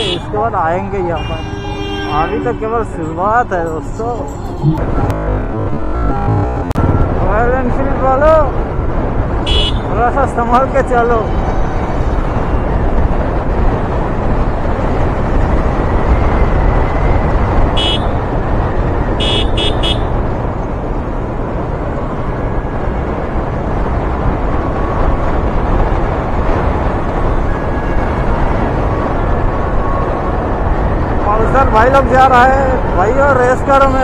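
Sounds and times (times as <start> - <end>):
vehicle horn beeps: 1.2 - 2.9, 9.5 - 9.9, 17.8 - 18.1, 19.2 - 20.1
wind rushing over microphone: 4.6 - 19.4, 20.0 - 34.0.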